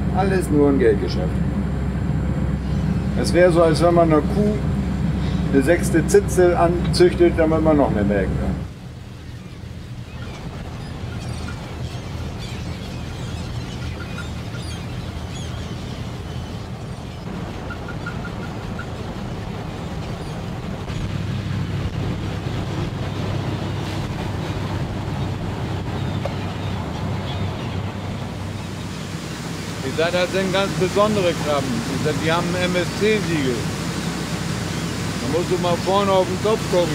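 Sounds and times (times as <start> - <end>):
boat engine running: 0.0 - 36.9
sea noise: 0.0 - 36.9
wind: 0.0 - 36.9
faint gull calls: 9.3 - 19.0.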